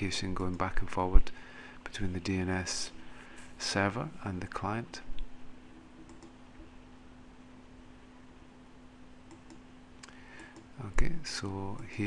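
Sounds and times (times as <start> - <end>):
steady low hum: 0.0 - 12.0
faint computer mouse clicks: 6.1 - 6.4, 9.3 - 10.7.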